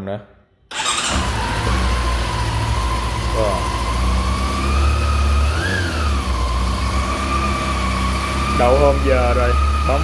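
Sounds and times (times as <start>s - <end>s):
electric starter cranking: 0.7s - 10.0s
motorcycle engine idling: 0.8s - 10.0s.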